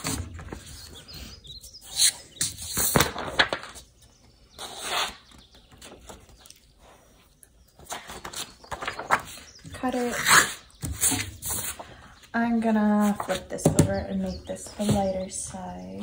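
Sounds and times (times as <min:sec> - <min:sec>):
paper rustling and creasing: 0:07.8 - 0:12.0.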